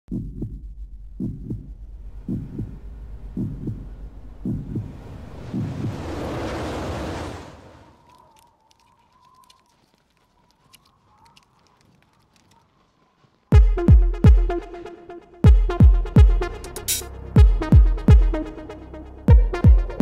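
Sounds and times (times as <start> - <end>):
heartbeat thumps: 0.1 - 5.8, 13.5 - 14.8, 15.4 - 16.5, 17.4 - 18.4, 19.3 - 20.0
rush of noise: 1.9 - 8.0
light ticks: 8.0 - 13.4.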